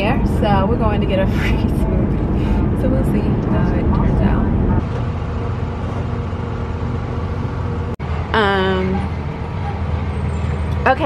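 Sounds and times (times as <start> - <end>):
woman speaking: 0.0 - 4.6, 8.3 - 9.1, 10.8 - 11.0
vehicle engine idling: 0.0 - 11.0.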